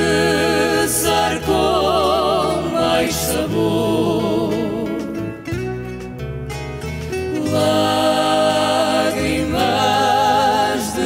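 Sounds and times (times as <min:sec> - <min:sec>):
guitars picking a melody: 0:00.0 - 0:11.0.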